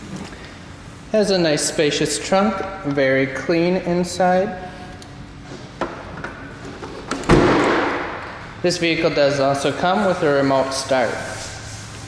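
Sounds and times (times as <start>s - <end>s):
car trunk lid closing: 7.1s - 8.0s.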